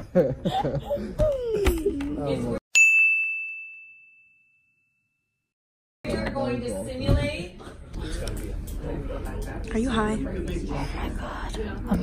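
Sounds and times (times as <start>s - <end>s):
bell-like ding: 2.7s - 5.4s.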